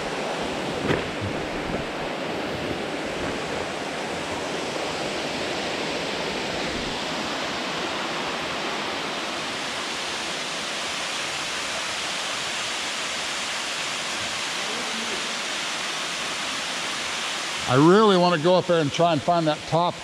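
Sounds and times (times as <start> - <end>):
running water: 0.0 - 20.0.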